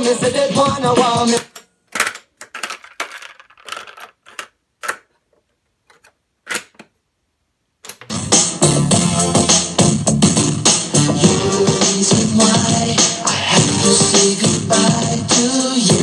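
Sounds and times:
music from boombox speakers: 0.0 - 1.4, 8.1 - 16.0.

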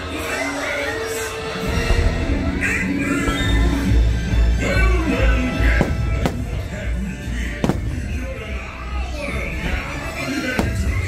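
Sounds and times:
firework shells bursting: 5.8 - 6.8, 7.6 - 8.4, 10.6 - 11.0.

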